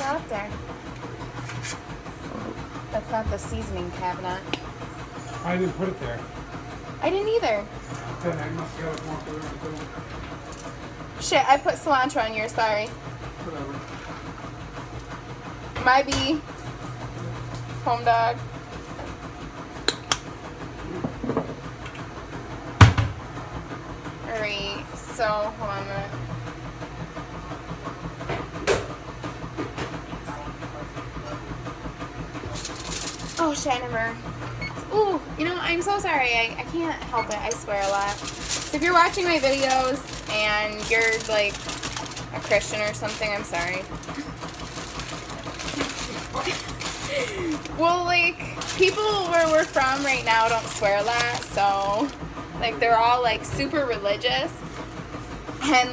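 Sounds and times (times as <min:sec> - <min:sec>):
aluminium foil crinkling: 0:32.5 - 0:33.5, 0:37.3 - 0:52.2.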